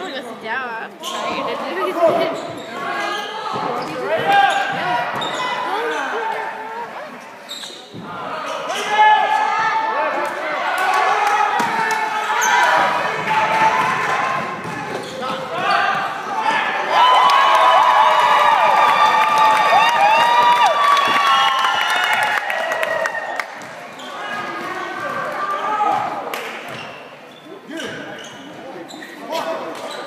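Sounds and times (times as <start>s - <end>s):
spectators' voices in echoing hall: 0.0s - 30.0s
sneakers squeaking: 1.0s - 9.6s, 11.6s - 16.7s, 23.5s - 30.0s.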